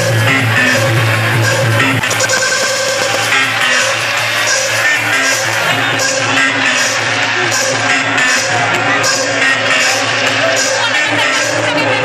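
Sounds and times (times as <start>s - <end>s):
electronic dance music: 0.0s - 12.0s
steady bass line: 0.0s - 12.0s.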